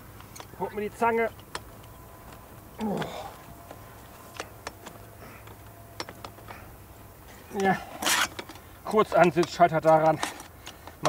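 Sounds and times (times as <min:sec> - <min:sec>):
metallic clicks and knocks: 0:00.0 - 0:11.0.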